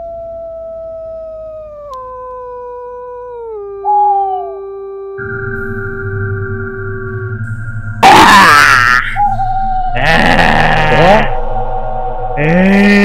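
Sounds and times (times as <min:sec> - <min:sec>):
low drone: 0:02.6 - 0:13.0
eerie howling tones sliding down: 0:03.2 - 0:13.0.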